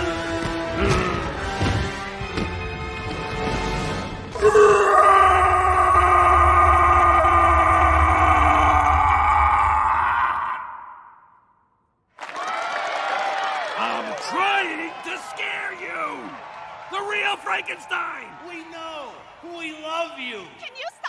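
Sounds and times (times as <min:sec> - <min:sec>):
background music: 0:00.0 - 0:08.9
monster roaring: 0:04.4 - 0:11.1.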